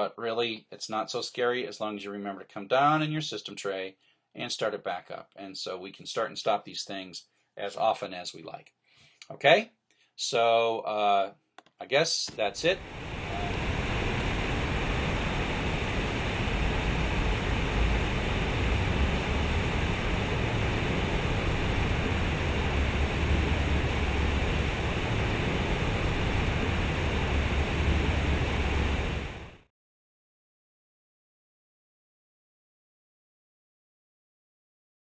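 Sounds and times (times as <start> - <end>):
fountain water splashing into pool: 12.6 - 29.4.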